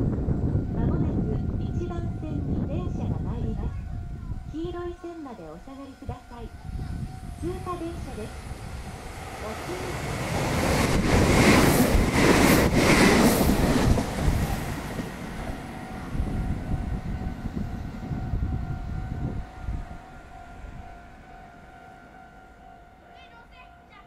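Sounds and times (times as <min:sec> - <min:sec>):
train wheels rushing on rail: 0:00.0 - 0:20.4.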